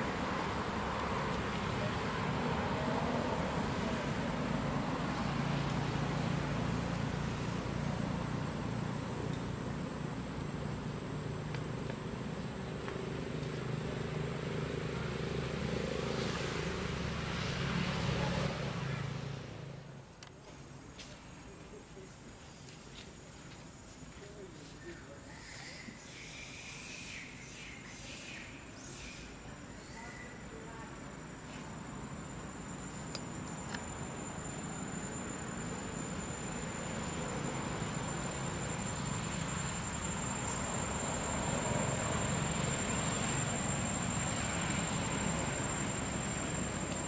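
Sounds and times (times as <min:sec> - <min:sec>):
high-pitched insect trill: 0:25.2 - 0:47.0
motor engine droning: 0:31.7 - 0:47.0.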